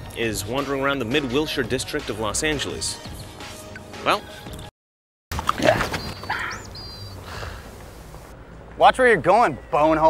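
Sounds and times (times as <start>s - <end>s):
high bird chirps: 5.9s - 7.6s.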